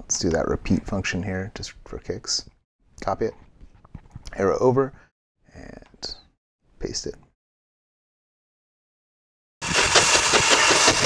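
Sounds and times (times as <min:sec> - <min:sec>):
sped-up steam train chuffing: 0:09.6 - 0:11.0.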